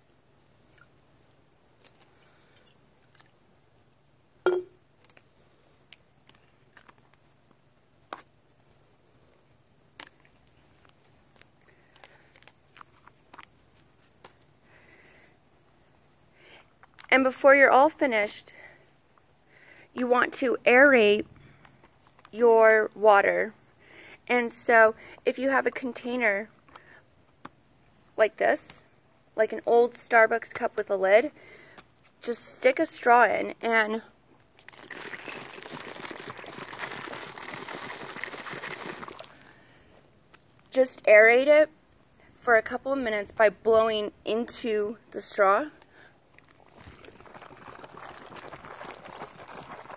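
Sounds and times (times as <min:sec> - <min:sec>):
air bubbling through straw: 0:34.6 - 0:39.6, 0:46.4 - 0:49.9.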